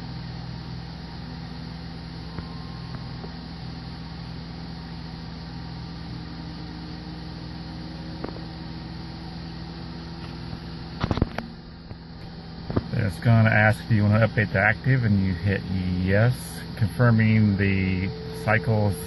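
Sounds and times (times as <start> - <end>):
avionics and cooling fans humming: 0.0 - 19.0.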